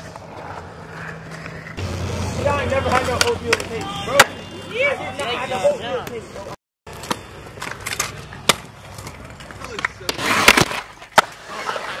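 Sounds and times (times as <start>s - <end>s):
wheels rolling on concrete: 0.0s - 12.0s.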